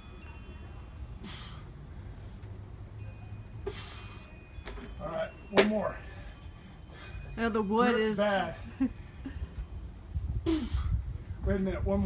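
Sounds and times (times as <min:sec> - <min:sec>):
metal wind chime ringing: 0:00.0 - 0:01.3, 0:02.8 - 0:10.1.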